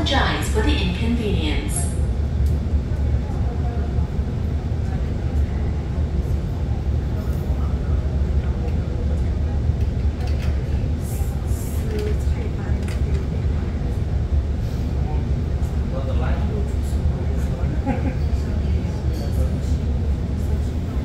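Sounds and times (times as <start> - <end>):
train car equipment hum: 0.0 - 15.9.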